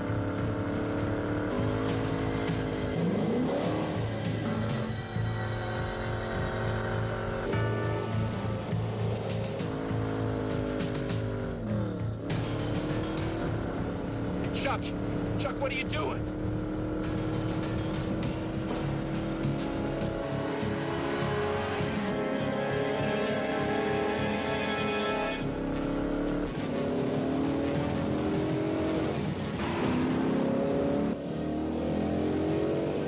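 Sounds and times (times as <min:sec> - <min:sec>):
car engines accelerating hard: 0:00.0 - 0:33.0
film music score: 0:00.0 - 0:33.0.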